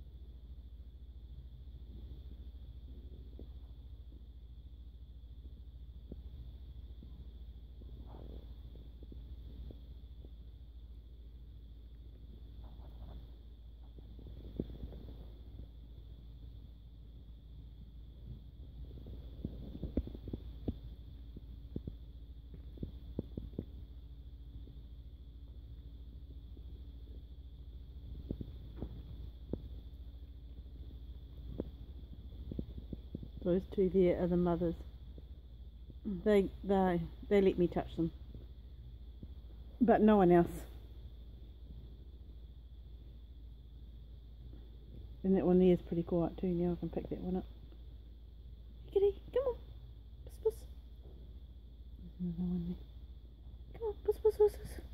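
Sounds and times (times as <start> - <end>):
faint hum: 0.0 - 54.9
low rumble: 0.0 - 54.9.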